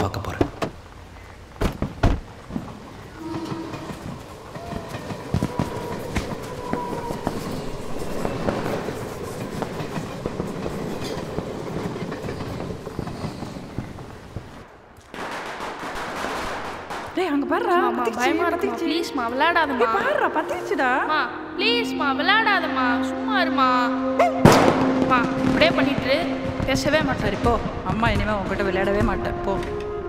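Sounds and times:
rumbling clattering noise: 0.0s - 14.7s.

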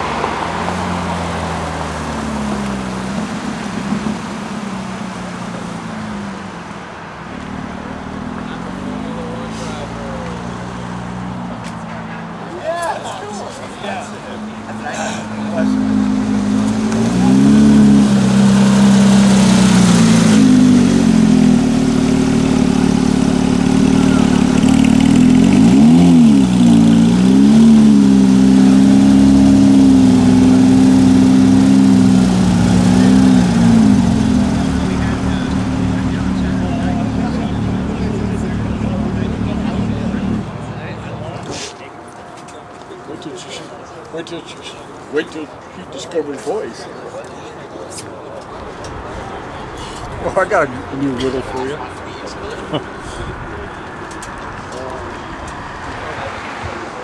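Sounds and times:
car engine revving at low revs: 14.2s - 41.5s.

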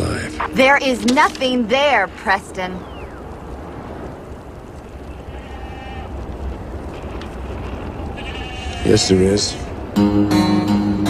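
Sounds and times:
steady low rumble: 0.0s - 8.4s
goats bleating: 5.0s - 6.4s, 7.2s - 9.7s.

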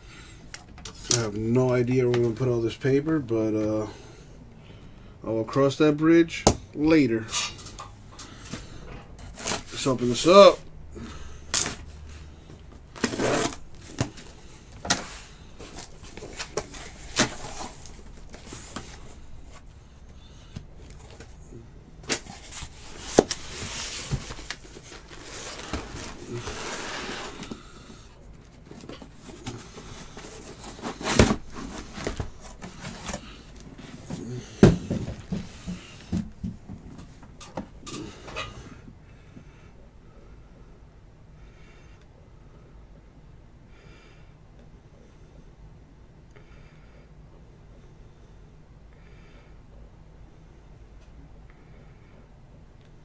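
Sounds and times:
packaging rustling: 12.7s - 19.7s, 22.0s - 36.4s
cardboard boxes knocking and clicking: 28.8s - 33.2s, 34.0s - 37.7s.

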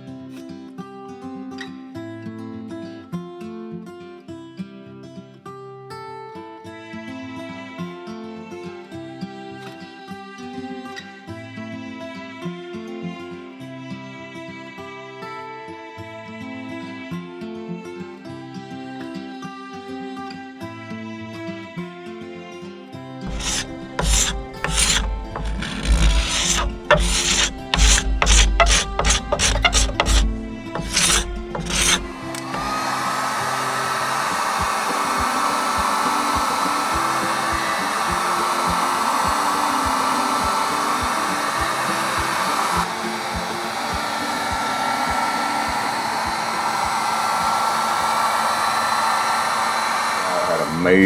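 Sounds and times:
heat gun blowing: 23.2s - 51.0s
background music with a beat: 37.6s - 47.0s.

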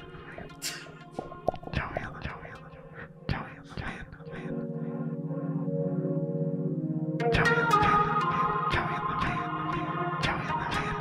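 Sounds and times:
man whispering: 0.0s - 0.9s, 1.6s - 4.7s, 7.4s - 11.0s
music bed: 0.0s - 11.0s.

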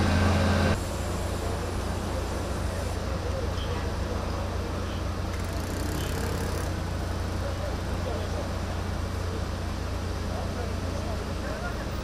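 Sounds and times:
engines running: 0.0s - 12.0s
faint voices: 0.4s - 12.0s.

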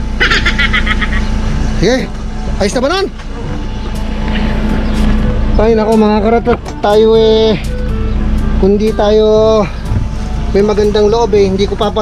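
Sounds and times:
car engine idling: 0.0s - 12.0s
high-pitched chattering pulses: 0.1s - 1.4s
person laughing: 0.2s - 1.4s.

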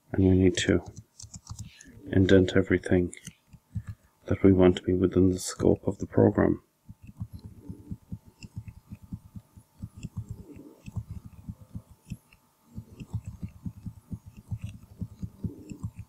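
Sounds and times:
keyboard keys tapping: 0.8s - 1.7s, 6.9s - 16.0s.

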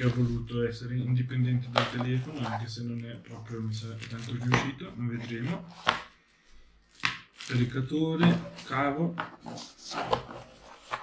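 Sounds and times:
cardboard rustling and scraping: 0.0s - 0.5s, 1.5s - 6.0s, 7.3s - 11.0s.

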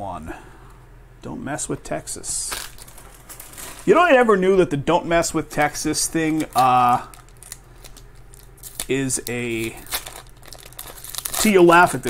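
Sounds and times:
foil wrapper crinkling: 2.5s - 4.0s, 5.6s - 12.0s.

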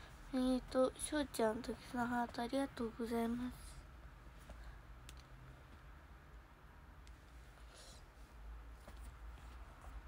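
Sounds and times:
small sharp clicks: 5.0s - 5.3s.

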